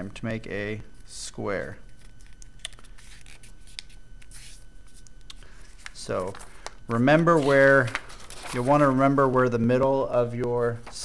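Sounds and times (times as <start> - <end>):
paper rustling: 1.9 - 9.5.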